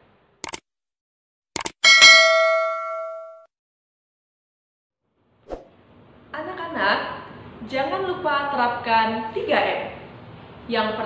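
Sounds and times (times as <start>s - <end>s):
short clicks: 0.4s - 0.6s, 1.6s - 1.8s
bell-like ding: 1.8s - 3.5s.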